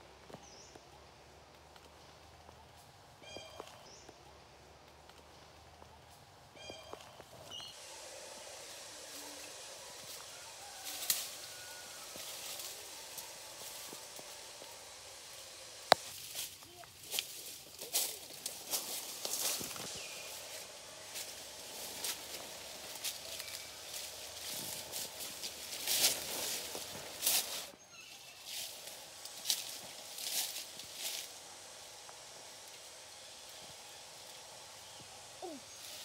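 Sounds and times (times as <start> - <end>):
footsteps in undergrowth: 0.1 - 36.0
leaves and stems crackling: 0.4 - 36.0
short high calls: 6.6 - 16.1.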